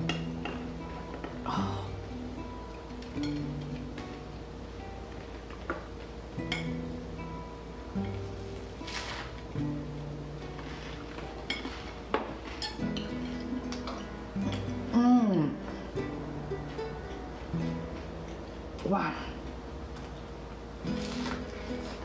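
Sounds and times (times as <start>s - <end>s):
gentle plucked-string music: 0.0s - 22.0s.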